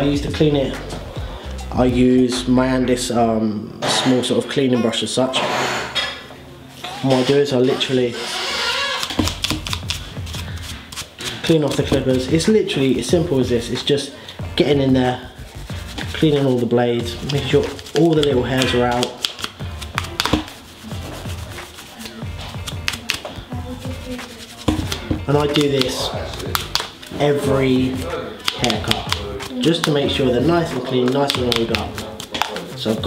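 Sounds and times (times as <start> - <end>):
brush scrubbing clipper blade: 31.0 - 33.0.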